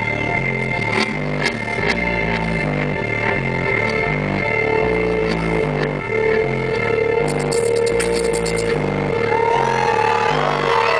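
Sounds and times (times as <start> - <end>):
steady tone: 0.0 - 9.8
beatboxing clicks: 6.8 - 8.9.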